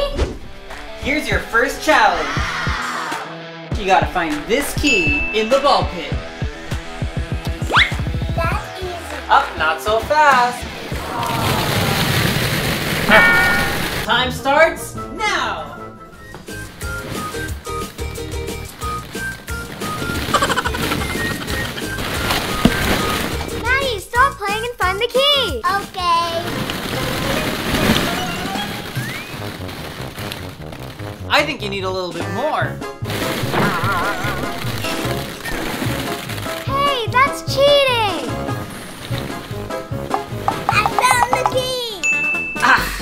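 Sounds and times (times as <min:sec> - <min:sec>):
plastic balls clattering: 0:10.9 - 0:14.1, 0:16.6 - 0:23.7, 0:25.6 - 0:31.4, 0:33.0 - 0:41.8.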